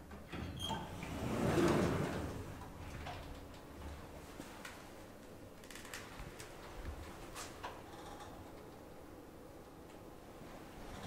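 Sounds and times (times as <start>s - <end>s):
elevator doors sliding open: 0.2s - 3.6s.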